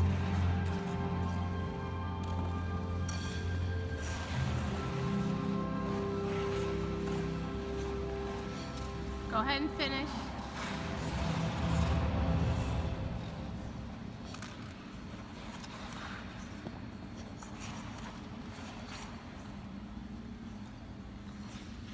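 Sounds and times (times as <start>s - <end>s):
ice skates scraping on ice: 0.0s - 21.9s
low rink hum: 0.0s - 21.9s
low rumble: 10.2s - 14.3s.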